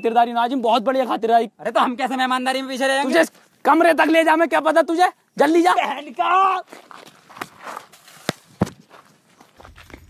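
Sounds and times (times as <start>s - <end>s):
footsteps running on dirt: 6.6s - 10.0s.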